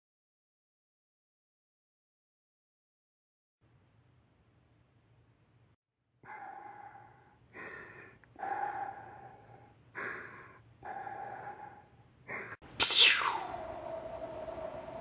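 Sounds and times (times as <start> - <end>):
person breathing heavily: 7.0 - 12.6
lightsaber ignition swoosh and hum: 12.8 - 14.9.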